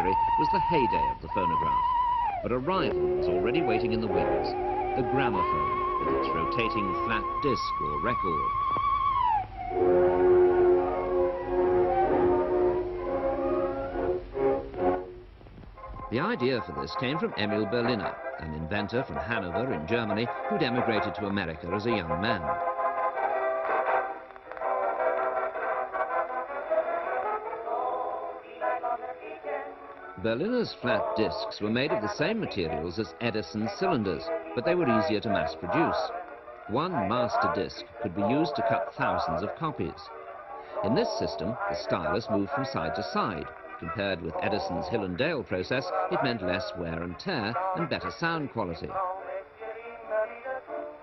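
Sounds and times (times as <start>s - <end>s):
gramophone music with held notes: 0.0s - 51.0s.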